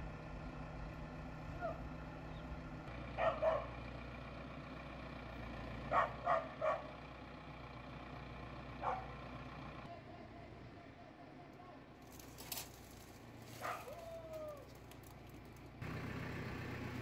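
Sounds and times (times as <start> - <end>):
tractor diesel engine idling: 0.0 - 17.0
dog barking: 3.2 - 3.7, 5.9 - 6.9, 8.8 - 9.2, 13.6 - 14.0.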